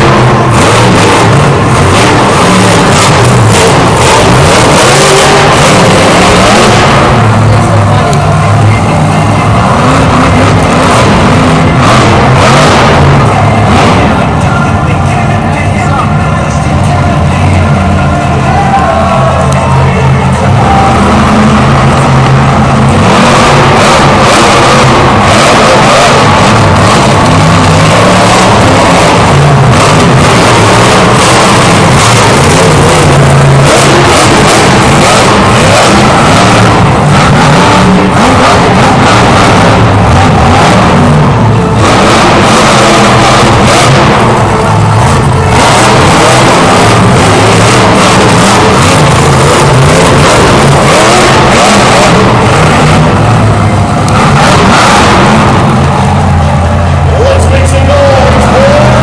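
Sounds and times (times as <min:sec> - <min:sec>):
truck engine revving hard: 0:00.0 - 0:59.0.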